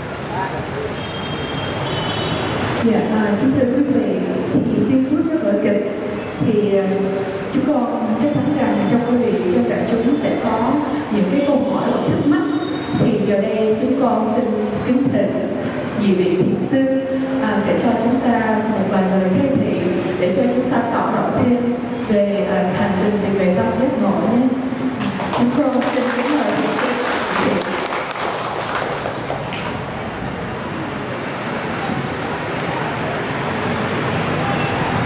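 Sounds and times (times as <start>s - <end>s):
audience applauding: 25.0s - 29.9s.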